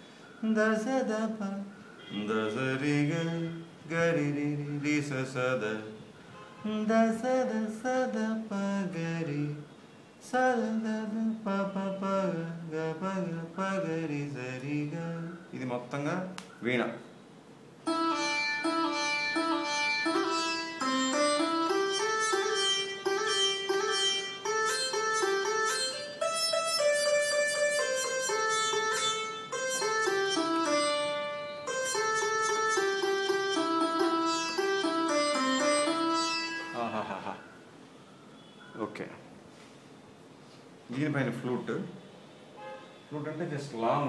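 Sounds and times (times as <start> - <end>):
keyboard sitar melody: 17.8 - 37.6.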